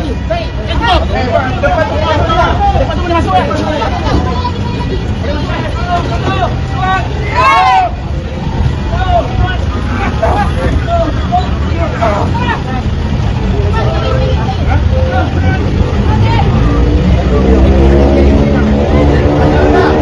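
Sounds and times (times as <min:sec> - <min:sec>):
people talking and calling out: 0:00.0 - 0:20.0.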